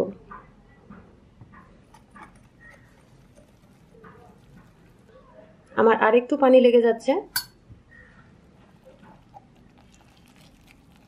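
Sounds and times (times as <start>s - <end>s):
whisk tapping and scraping glass bowl: 1.9s - 5.1s.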